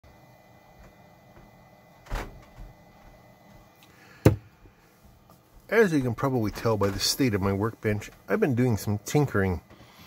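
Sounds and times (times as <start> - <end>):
faint steady whine: 0.0 - 10.0.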